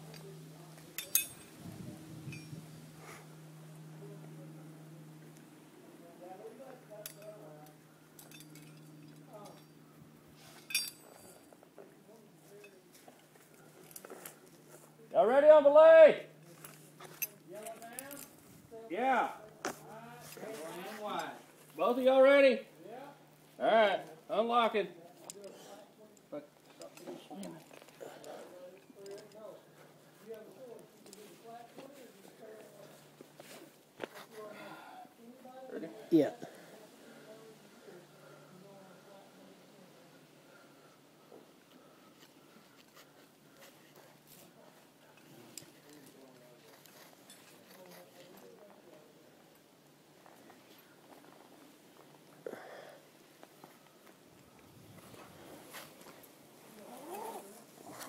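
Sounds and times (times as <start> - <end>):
metal carabiners clinking: 0.9 - 1.6, 8.2 - 9.8, 10.5 - 11.4.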